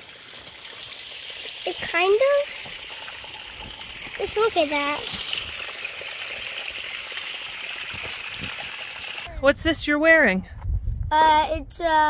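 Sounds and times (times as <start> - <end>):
water trickling onto stones: 0.0 - 9.3.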